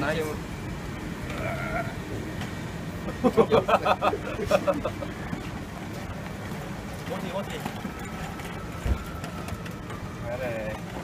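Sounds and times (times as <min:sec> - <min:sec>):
steady background hum: 0:00.0 - 0:11.0
man laughing: 0:03.1 - 0:05.2.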